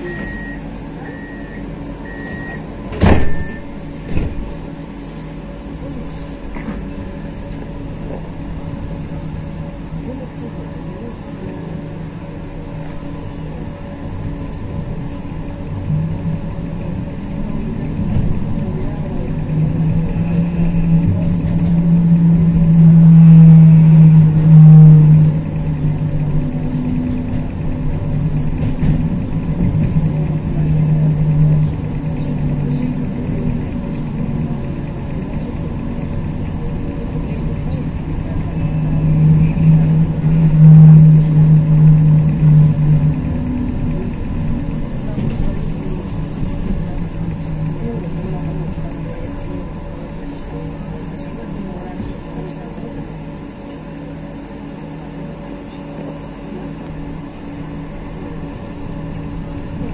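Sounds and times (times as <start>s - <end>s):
tram humming and rumbling: 0.0s - 59.9s.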